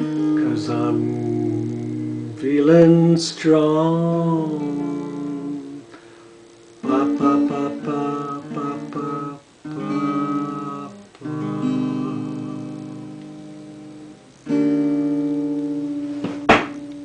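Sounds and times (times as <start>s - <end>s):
acoustic guitar strummed chords: 0.0s - 17.0s.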